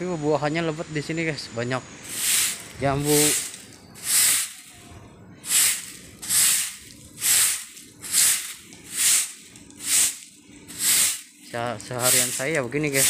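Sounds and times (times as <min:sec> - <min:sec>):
broom sweeping pavement: 0:02.0 - 0:13.0.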